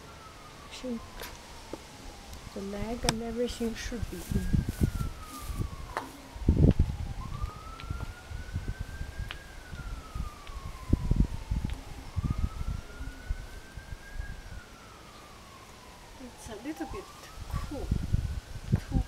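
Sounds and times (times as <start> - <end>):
wailing siren: 0.0 - 19.0.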